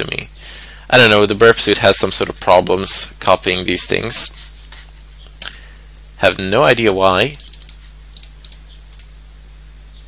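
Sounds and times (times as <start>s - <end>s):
low electrical hum: 0.0s - 10.0s
keyboard and mouse clicking: 7.4s - 9.1s.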